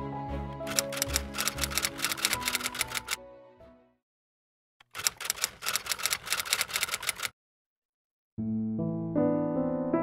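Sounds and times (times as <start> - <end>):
keyboard keystroke clicks: 0.6 - 3.2.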